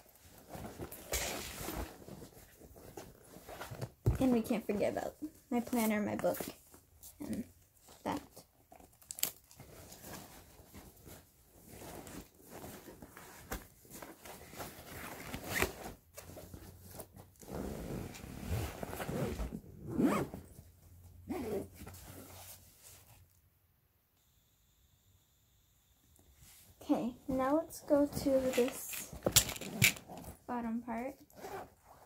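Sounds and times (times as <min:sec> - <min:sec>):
fabric and items rustling: 0:00.0 - 0:23.4, 0:26.4 - 0:32.0
backpack zipper being pulled: 0:17.4 - 0:20.4, 0:31.3 - 0:32.0.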